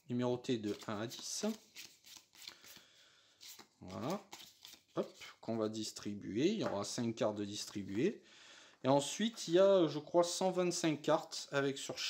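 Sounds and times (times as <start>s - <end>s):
cards shuffled by hand: 0.6s - 2.8s, 3.4s - 5.2s.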